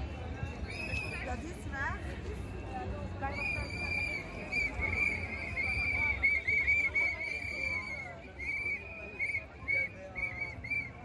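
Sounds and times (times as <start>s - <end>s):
crowd chatter: 0.0s - 11.0s
hand whistles blown: 0.6s - 1.3s, 3.3s - 11.0s.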